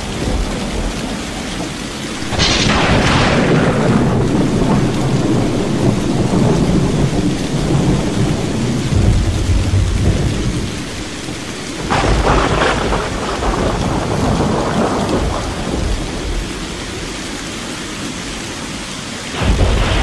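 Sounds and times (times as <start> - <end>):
rolling low thunder: 0.0 - 16.6, 19.4 - 20.0
steady rain: 0.0 - 20.0
sharp thunderclap: 2.2 - 16.5, 19.4 - 20.0.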